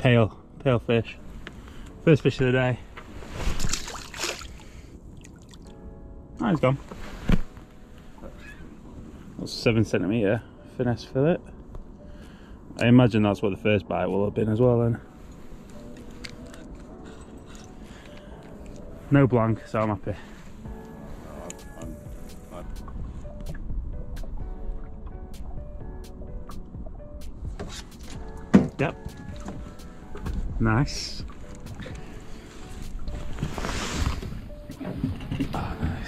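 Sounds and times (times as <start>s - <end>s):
faint background music: 0.0s - 36.0s.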